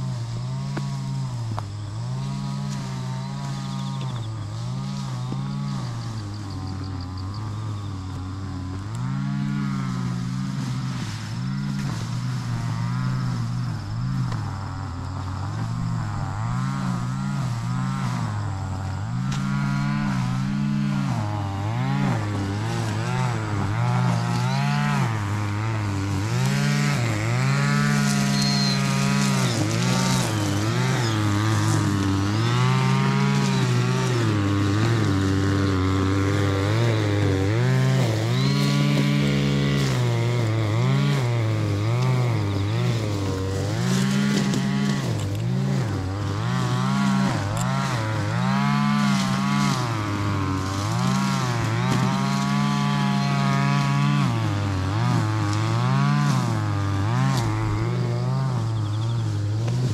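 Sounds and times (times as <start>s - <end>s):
brush cutter engine revving: 0.0s - 59.9s.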